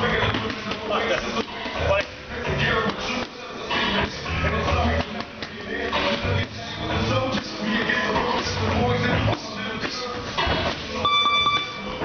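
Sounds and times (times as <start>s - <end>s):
high electronic beep: 11.0s - 12.0s.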